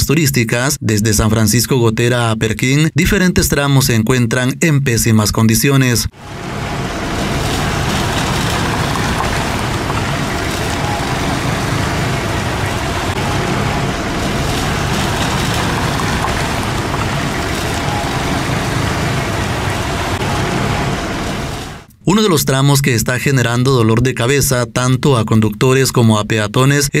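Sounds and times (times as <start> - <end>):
tyre noise on rough road: 6.2 - 21.9
vehicle engines running: 6.2 - 21.9.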